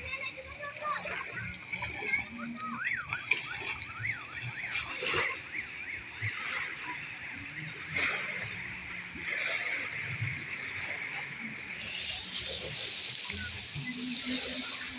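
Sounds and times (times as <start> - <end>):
people's voices: 0.0 - 14.9
small waves splashing on shore: 0.0 - 14.9
high wavering calls: 1.2 - 7.8, 11.8 - 14.9.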